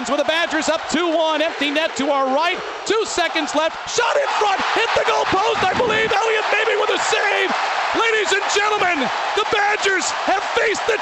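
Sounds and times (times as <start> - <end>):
announcer shouting excitedly: 0.0 - 11.0
crowd cheering: 0.0 - 11.0.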